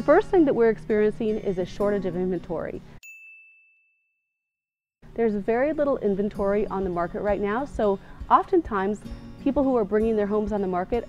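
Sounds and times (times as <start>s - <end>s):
ding sound effect: 3.0s - 4.0s.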